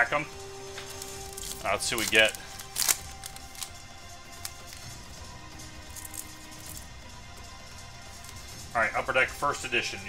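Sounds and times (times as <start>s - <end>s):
quiet background music: 0.0s - 10.0s
foil pack tearing and rustling: 0.7s - 5.0s, 5.8s - 6.9s.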